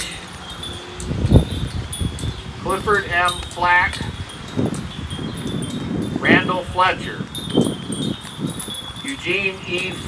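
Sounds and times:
high tinkling chimes: 0.0s - 10.0s
wind rumble on microphone: 0.0s - 10.0s.

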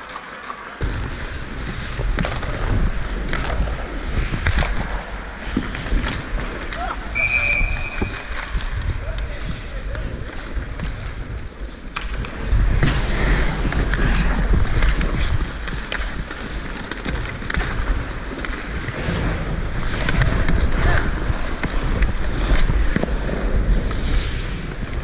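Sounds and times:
hockey sticks and puck clicking: 0.0s - 25.0s
skate blades scraping ice: 0.0s - 25.0s
wind rumble on camera: 0.8s - 25.0s.

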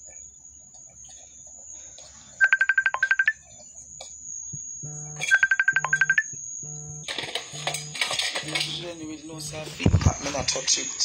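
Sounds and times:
low repeating tone: 2.4s - 3.4s, 4.8s - 8.6s
phone ringtone beeps: 2.4s - 3.4s, 5.2s - 6.3s
clattering noise: 7.0s - 9.0s.

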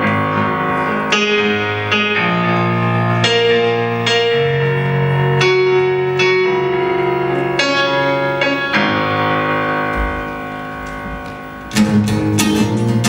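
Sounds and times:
acoustic guitar strumming chords: 0.0s - 13.0s
electronic keyboard chords: 0.0s - 13.0s.

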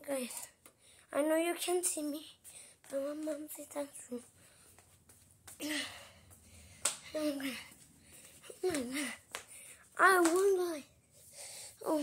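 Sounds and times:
boy's wordless vocal sound: 7.0s - 7.8s, 11.8s - 12.0s.

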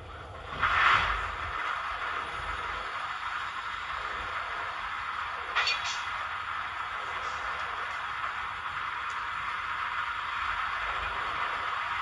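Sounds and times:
locomotive hiss: 0.0s - 12.0s
low rumble: 0.0s - 12.0s.

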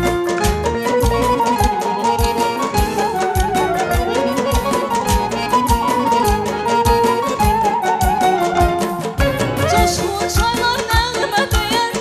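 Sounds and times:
folk ensemble melody: 0.0s - 12.0s
steady drum beat: 0.0s - 12.0s
woman singing: 9.7s - 12.0s.

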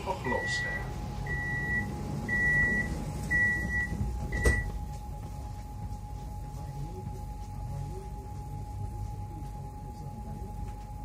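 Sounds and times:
faint train hum: 0.0s - 11.0s
high door warning beeps: 0.2s - 4.8s.

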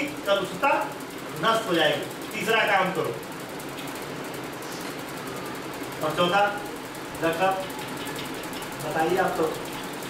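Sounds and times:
mechanical hum and hiss: 0.0s - 10.0s.

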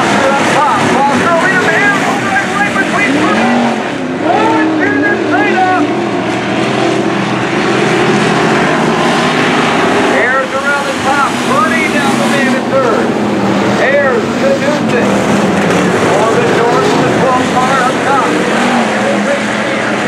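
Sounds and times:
race car engines roaring: 0.0s - 20.0s.

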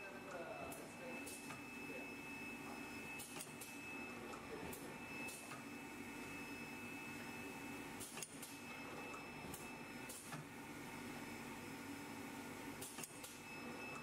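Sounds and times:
printing press machine hum: 0.0s - 14.0s.

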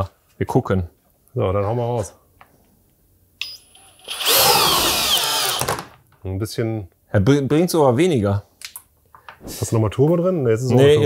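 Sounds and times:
cordless drill motor whine: 3.8s - 5.9s.

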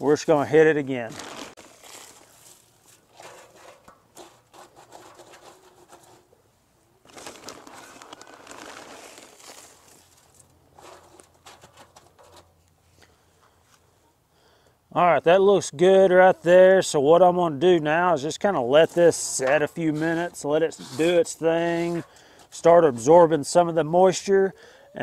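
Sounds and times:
bag rustling and crinkling: 0.5s - 6.2s, 7.0s - 12.4s.

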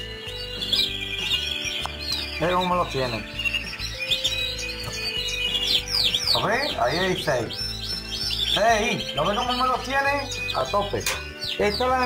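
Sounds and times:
chicks cheeping: 0.0s - 12.0s.

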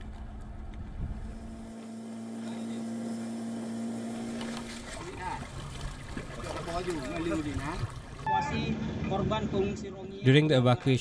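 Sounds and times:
boat engine humming: 0.0s - 10.2s.

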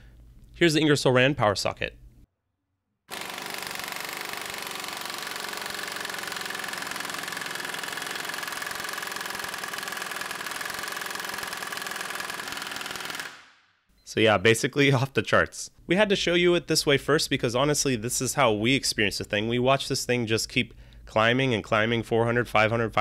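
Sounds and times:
pneumatic impact wrench hammering: 3.1s - 13.5s.

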